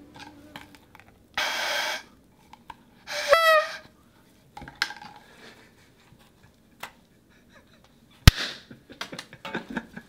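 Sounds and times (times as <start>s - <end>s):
party blower tooting: 1.4s - 2.1s, 3.1s - 3.9s.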